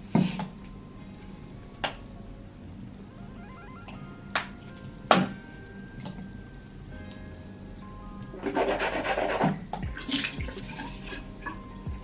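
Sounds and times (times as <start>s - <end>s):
water splashes and gurgles: 10.0s - 11.6s.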